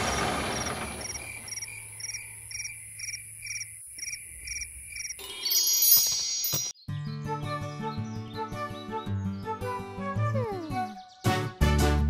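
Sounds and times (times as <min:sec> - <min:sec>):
cartoon cricket chirps: 0:00.5 - 0:06.6
sparkling chime sweep: 0:05.2 - 0:06.8
music: 0:06.8 - 0:12.0.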